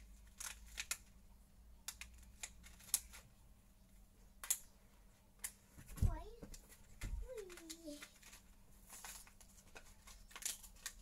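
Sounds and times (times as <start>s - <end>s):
packet crinkling clicks: 7.3s - 11.0s.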